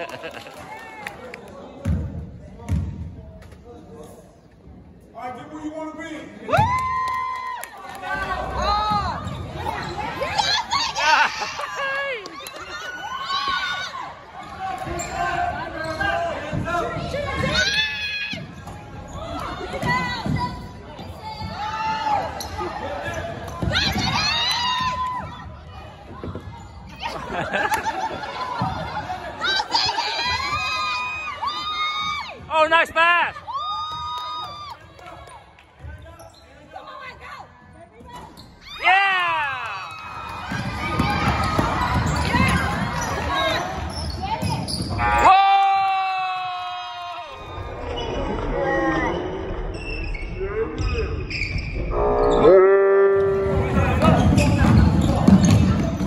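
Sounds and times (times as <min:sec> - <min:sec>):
sneakers squeaking: 0:08.4 - 0:11.0, 0:13.3 - 0:27.3, 0:35.8 - 0:38.8, 0:40.3 - 0:45.3, 0:47.4 - 0:52.5, 0:53.3 - 0:56.0
spectators' voices: 0:34.6 - 0:56.0
basketball bouncing: 0:40.4 - 0:43.3, 0:54.0 - 0:56.0.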